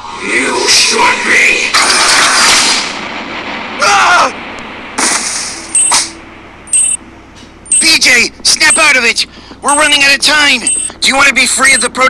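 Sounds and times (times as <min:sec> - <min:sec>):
rush of noise: 0:00.0 - 0:07.0
low hum: 0:00.0 - 0:11.0
high electronic tones: 0:05.7 - 0:07.0, 0:07.7 - 0:09.2, 0:10.6 - 0:11.0.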